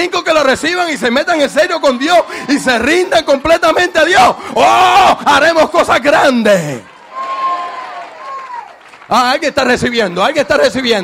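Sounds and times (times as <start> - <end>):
preacher preaching: 0.0 - 6.9, 9.0 - 11.0.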